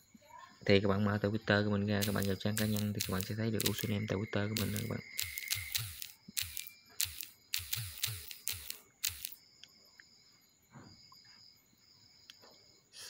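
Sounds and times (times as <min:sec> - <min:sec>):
phone keyboard typing clicks: 0:02.0 - 0:04.0, 0:04.6 - 0:09.4
faint hiss: 0:02.0 - 0:09.4.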